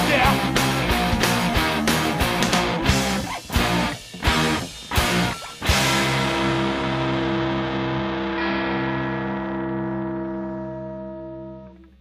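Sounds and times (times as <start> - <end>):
electric guitar chord with bass: 0.0 - 12.0.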